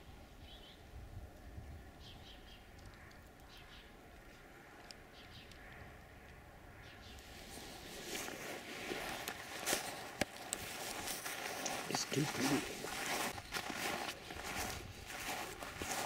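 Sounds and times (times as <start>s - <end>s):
rustling and crunching on frost: 7.2s - 16.0s.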